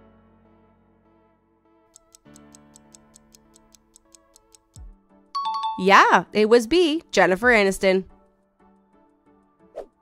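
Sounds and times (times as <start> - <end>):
quiet background music: 0.0 - 10.0
fast clock-like ticking: 2.0 - 4.9.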